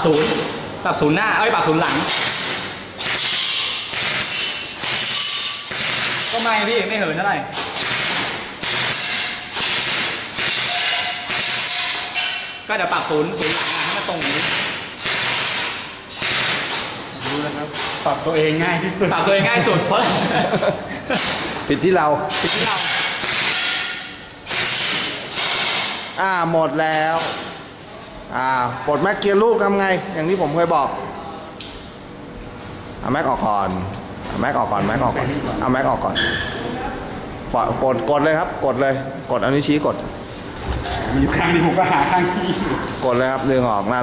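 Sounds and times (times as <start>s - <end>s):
airsoft rifle rapid fire: 15.0s - 16.7s.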